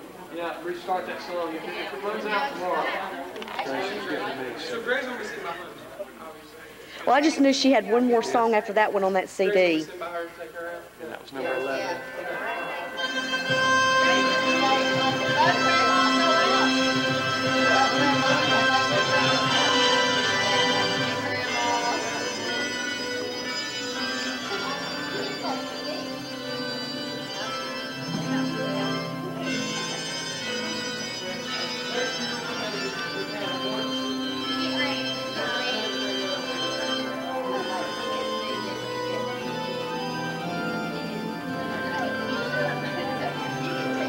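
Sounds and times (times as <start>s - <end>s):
murmur of voices: 0.0s - 44.0s
recorded music with held chords: 11.4s - 44.0s.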